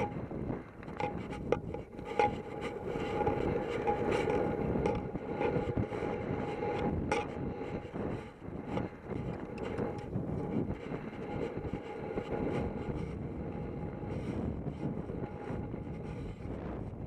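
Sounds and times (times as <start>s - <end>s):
wind rumbling on microphone: 0.0s - 17.0s.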